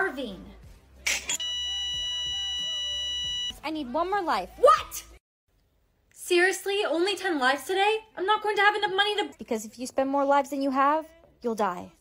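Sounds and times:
quiet background music: 0.0 - 5.2, 5.8 - 12.0
steady electronic beep: 1.3 - 3.6.

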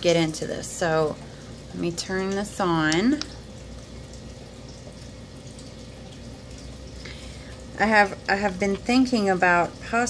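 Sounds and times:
faint constant tone: 0.0 - 10.0
low background hiss and hum: 0.0 - 10.0.

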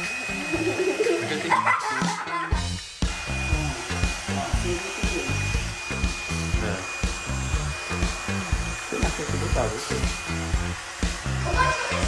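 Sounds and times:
background music with steady beat: 0.0 - 12.0
hair dryer blowing: 0.0 - 12.0.

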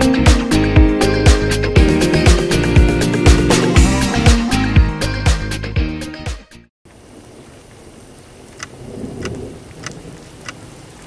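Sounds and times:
rain-like hiss: 6.9 - 11.0
faint ticks: 8.5 - 10.6.

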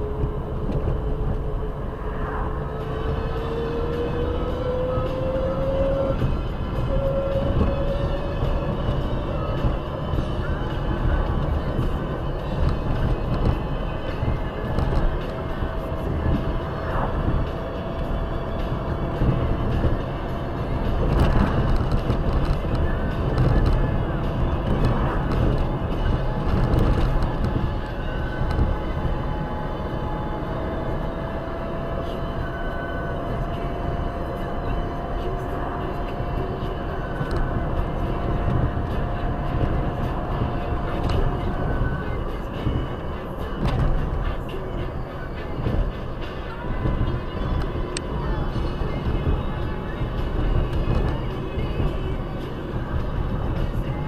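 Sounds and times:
car road and engine rumble: 0.0 - 54.0
faint thin whine rising in pitch: 0.9 - 6.2.

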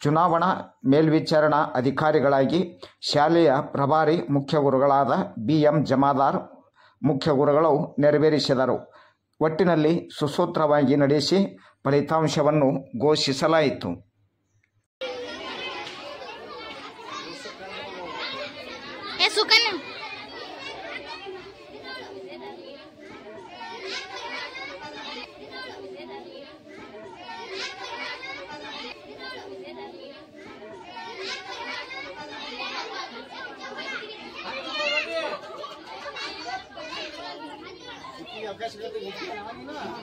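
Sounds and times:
children chattering and calling out: 15.0 - 40.0.

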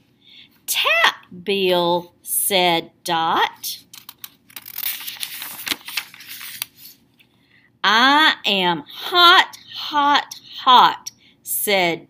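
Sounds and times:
book page turning: 3.8 - 7.4.

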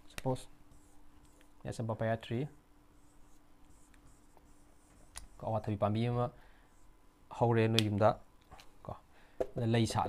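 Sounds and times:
marker drawing on whiteboard: 0.7 - 1.5, 2.9 - 5.8.

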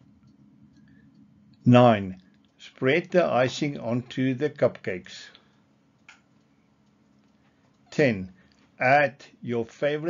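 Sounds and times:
person speaking: 1.6 - 5.4, 7.9 - 10.0.

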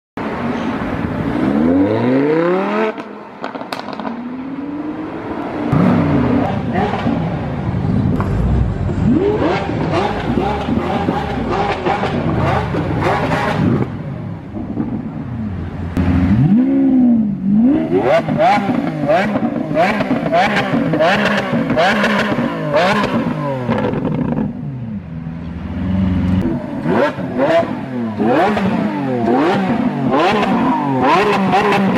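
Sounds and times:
car engines revving: 0.2 - 31.9
exhaust pops and crackles: 3.4 - 4.1, 8.1 - 8.6.

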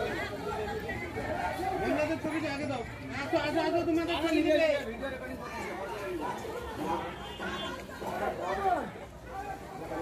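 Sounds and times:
distant people chattering: 0.0 - 10.0.

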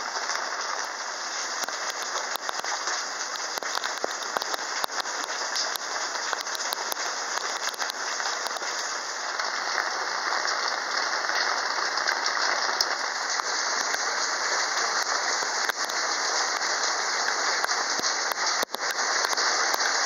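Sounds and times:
steady rain falling: 0.0 - 20.0.

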